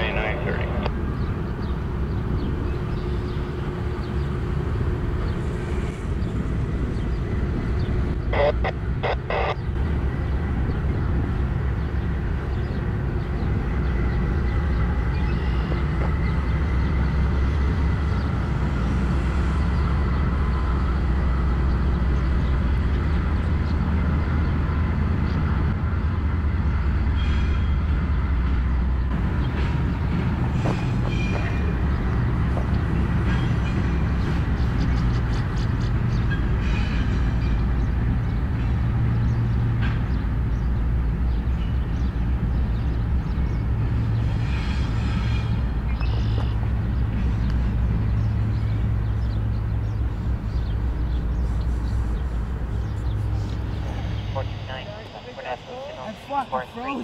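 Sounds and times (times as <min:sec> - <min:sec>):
diesel locomotive engines rumbling: 0:00.0 - 0:57.0.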